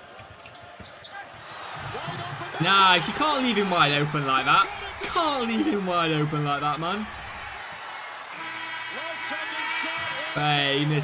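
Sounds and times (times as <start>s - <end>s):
crowd noise: 0.0s - 11.0s
commentator talking: 2.6s - 7.2s, 9.0s - 11.0s
arena horn buzzing: 8.3s - 11.0s.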